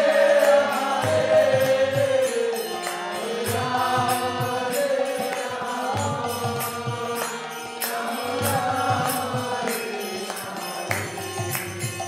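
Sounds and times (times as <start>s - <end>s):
harmonium held notes: 0.0s - 12.0s
small hand cymbals: 0.0s - 12.0s.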